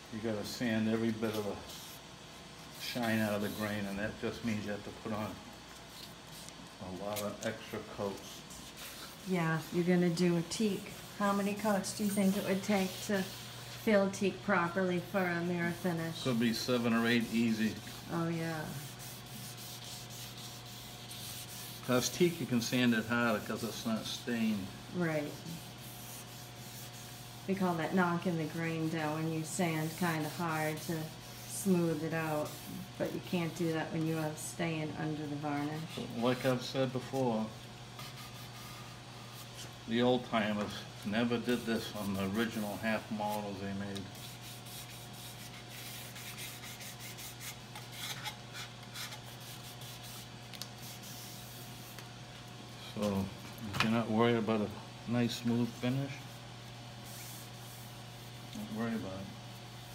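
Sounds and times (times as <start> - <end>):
wet sandpaper scrubbing: 7.7 - 34.4, 41.3 - 52.0.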